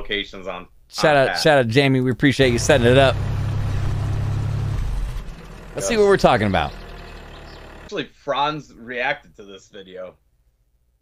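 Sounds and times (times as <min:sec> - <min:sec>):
engine idling low rumble: 0:02.4 - 0:07.9.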